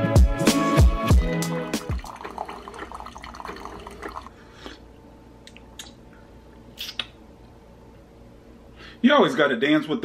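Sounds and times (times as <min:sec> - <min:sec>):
background music with a beat: 0:00.0 - 0:02.1
coffee pouring into a mug: 0:01.8 - 0:04.4.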